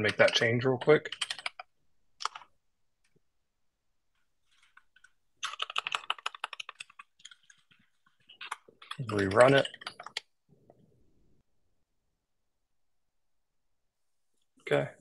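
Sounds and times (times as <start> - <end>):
typing on computer keyboard: 0.0 - 2.5, 4.8 - 10.3.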